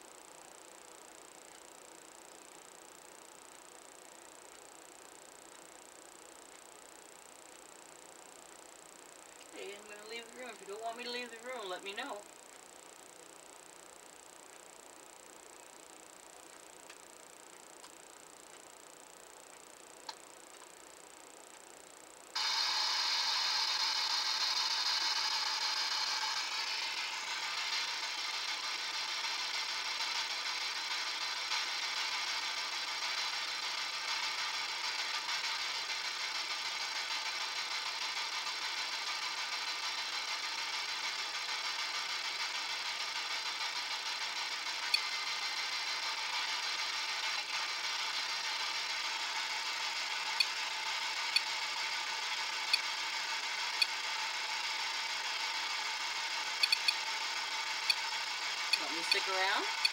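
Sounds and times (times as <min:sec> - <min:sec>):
faint high whine: 0:00.0 - 0:59.9
sharp ticks: 0:56.6 - 0:57.0.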